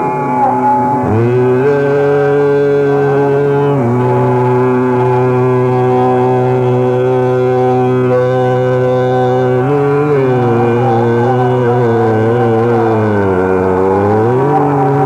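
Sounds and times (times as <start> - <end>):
man singing classical vocal: 1.0 - 15.0.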